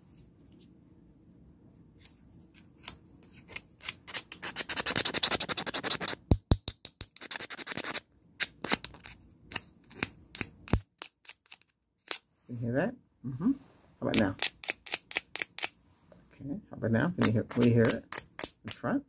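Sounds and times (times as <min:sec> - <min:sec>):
fingers rubbing and clicking: 0:03.5 - 0:12.2, 0:17.2 - 0:18.8.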